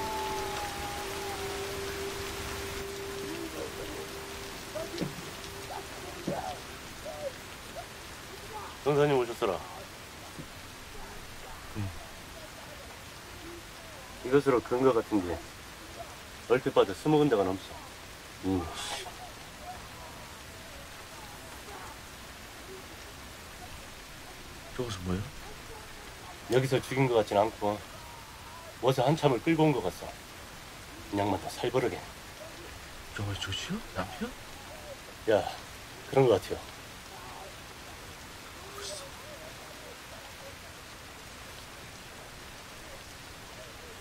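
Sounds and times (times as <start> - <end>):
faint murmured voices: 0.0 - 16.6, 17.6 - 28.9, 30.1 - 44.0
rain falling: 0.0 - 44.0.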